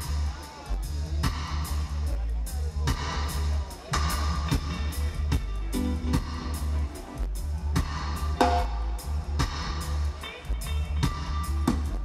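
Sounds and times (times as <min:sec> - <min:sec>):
deep bass guitar line: 0:00.0 - 0:12.0
reggae band playing: 0:00.0 - 0:12.0.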